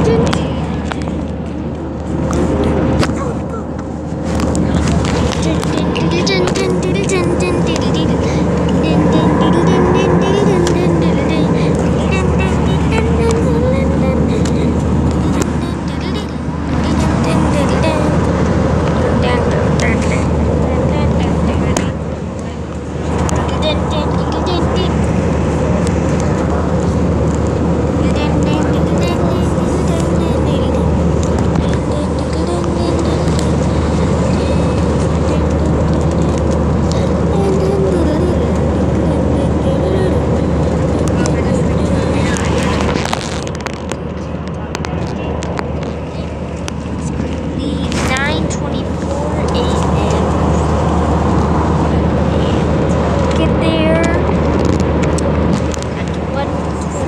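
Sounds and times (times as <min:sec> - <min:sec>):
airplane cabin drone: 0:00.0 - 0:57.0
indistinct voices: 0:00.0 - 0:57.0.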